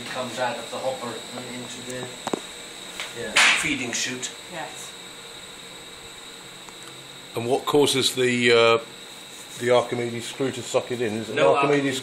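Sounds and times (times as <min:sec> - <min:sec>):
machinery hum with high whine: 0:00.0 - 0:12.0.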